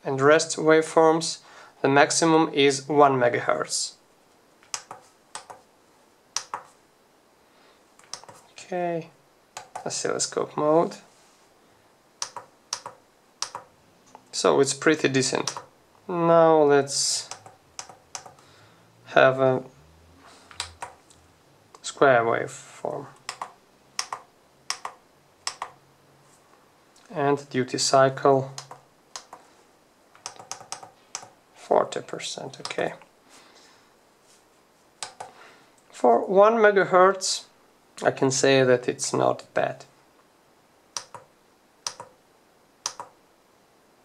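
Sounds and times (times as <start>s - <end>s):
keypad buttons clicking: 4.7s - 5.6s, 6.4s - 6.7s, 8.0s - 8.4s, 9.6s - 9.9s, 12.2s - 13.7s, 15.4s - 15.7s, 17.3s - 18.4s, 20.5s - 21.0s, 23.2s - 25.8s, 28.6s - 29.4s, 30.2s - 31.3s, 35.0s - 35.3s, 41.0s - 41.3s, 41.9s - 42.1s, 42.9s - 43.2s.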